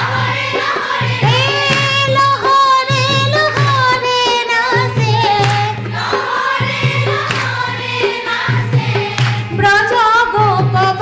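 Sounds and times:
women singing in chorus: 0.0 - 11.0
hand clapping: 1.6 - 2.0, 3.5 - 3.8, 5.4 - 5.8, 7.1 - 7.7, 9.0 - 9.5.

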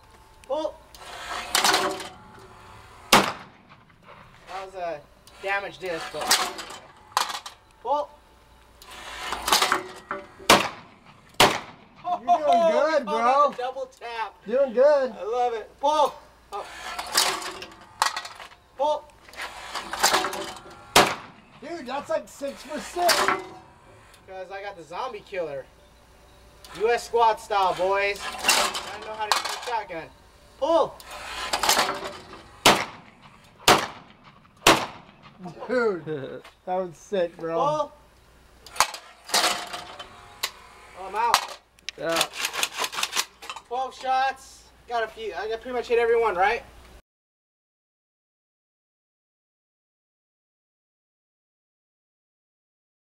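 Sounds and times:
rough long bang: 3.0 - 4.5, 9.5 - 12.3, 20.0 - 21.7, 31.6 - 35.4
shotgun shots with echo: 3.1 - 3.9, 10.5 - 12.1, 20.9 - 21.4, 32.6 - 35.4.

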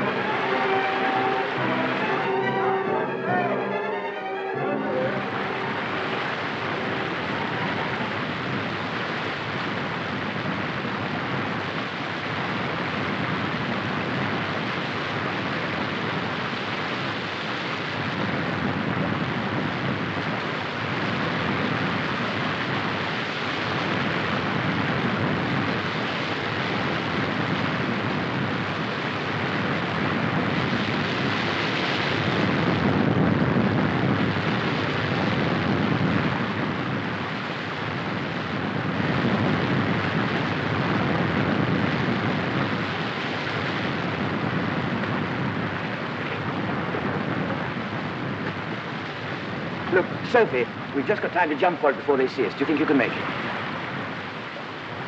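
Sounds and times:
waterfall and stream rushing: 0.0 - 18.3, 30.6 - 32.5, 41.9 - 55.0.

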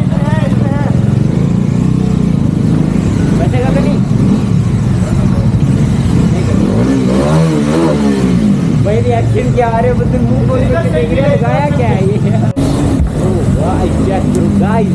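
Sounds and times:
motorcycle engine running: 0.0 - 14.9
voices: 0.0 - 14.9.

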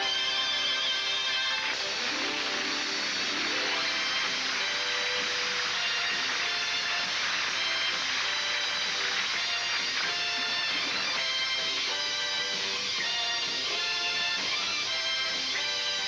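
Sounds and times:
instrumental music: 0.0 - 16.0.

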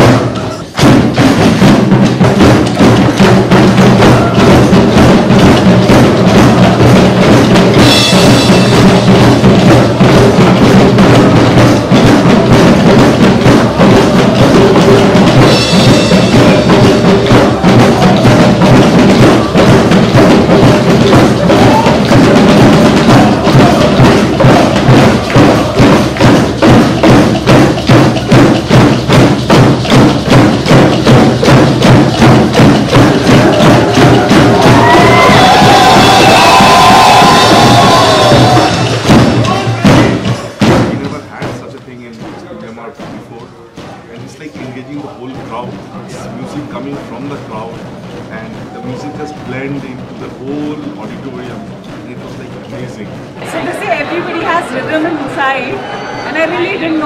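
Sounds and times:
drums beaten with sticks: 0.0 - 57.0
cymbal: 2.4 - 40.6.

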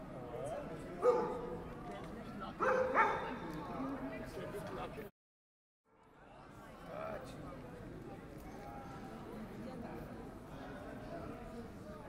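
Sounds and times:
murmur of passers-by: 0.0 - 5.1, 6.0 - 12.0
dog barking: 1.0 - 1.5, 2.6 - 3.4.

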